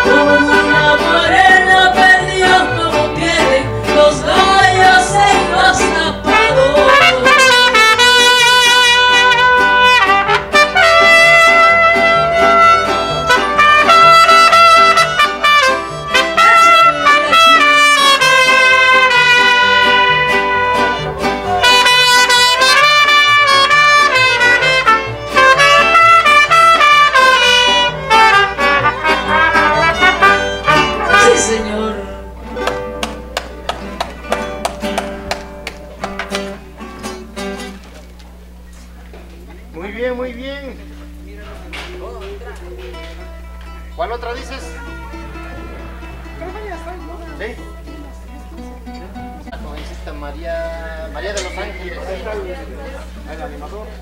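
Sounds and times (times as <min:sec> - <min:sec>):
trumpets playing melody: 0:00.0 - 0:01.6, 0:06.2 - 0:32.0, 0:44.2 - 0:47.4
plucked strings: 0:00.0 - 0:38.0, 0:41.8 - 0:50.1
accordion and band backing: 0:00.0 - 0:39.8, 0:40.8 - 0:50.2.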